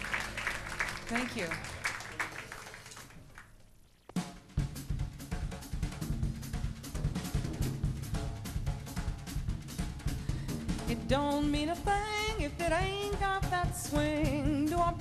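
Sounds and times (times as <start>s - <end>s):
drum kit swing beat: 4.0s - 15.0s.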